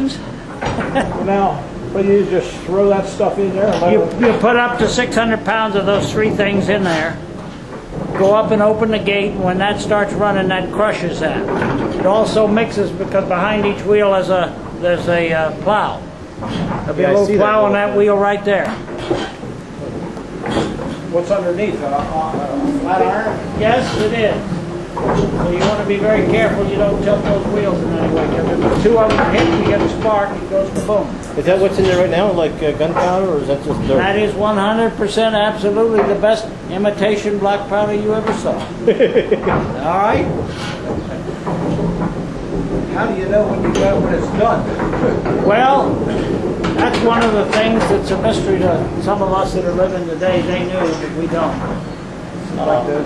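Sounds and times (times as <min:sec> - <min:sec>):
iron mill wheels grinding rumble: 0:00.0 - 0:53.0.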